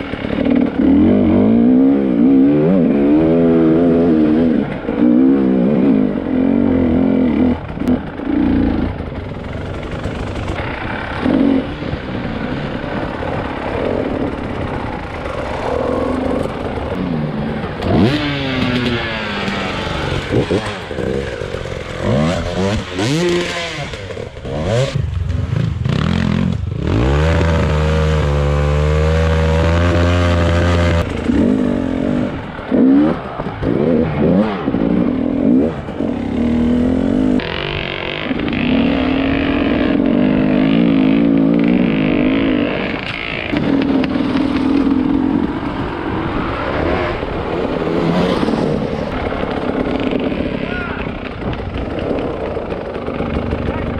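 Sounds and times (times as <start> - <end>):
motorcycle engine revving: 0.0 - 53.9.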